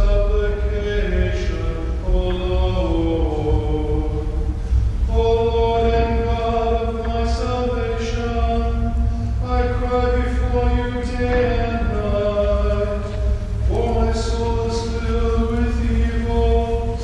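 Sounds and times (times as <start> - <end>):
hymn singing: 0.0 - 17.0
sustained low tones: 0.0 - 17.0.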